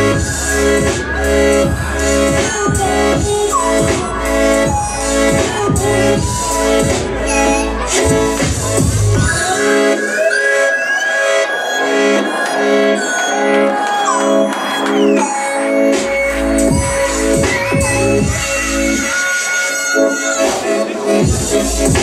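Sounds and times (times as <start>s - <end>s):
deep bass: 0.0s - 9.4s, 16.1s - 18.9s
electronic hip-hop beat: 0.0s - 22.0s
synth chords: 0.0s - 22.0s.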